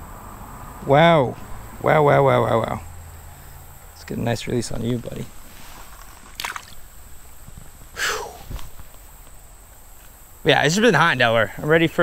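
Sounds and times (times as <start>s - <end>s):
fish splashing in shallow water: 6.2s - 6.9s.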